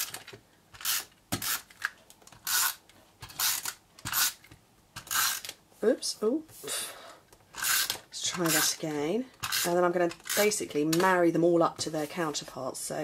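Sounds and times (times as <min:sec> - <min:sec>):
tape runner strokes: 0:00.0 - 0:05.6, 0:07.5 - 0:08.8.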